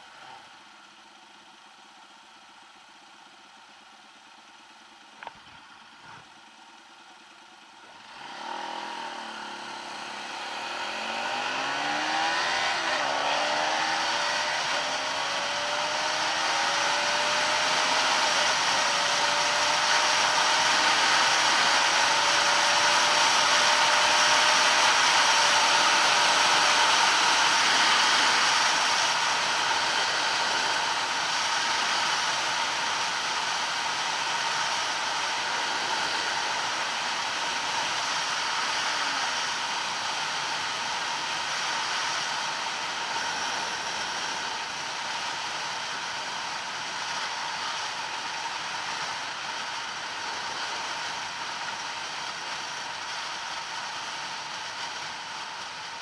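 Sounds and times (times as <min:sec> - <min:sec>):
motorcycle engine hum: 0:00.0 - 0:56.0.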